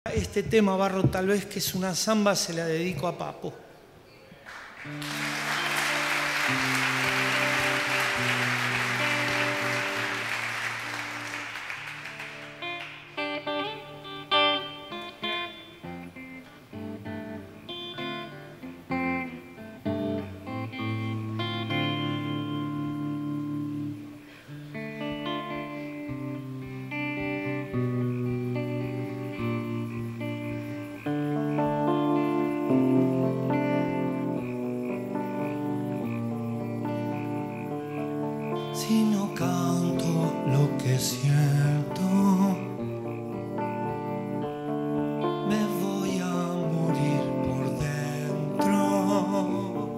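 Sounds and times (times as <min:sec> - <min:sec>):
applause: 0:04.4 - 0:13.4
electric guitar playing slowly: 0:04.5 - 0:49.9.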